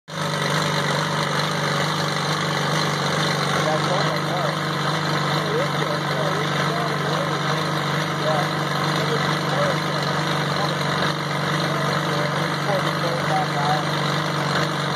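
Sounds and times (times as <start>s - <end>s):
bulldozer engine running: 0.1s - 14.9s.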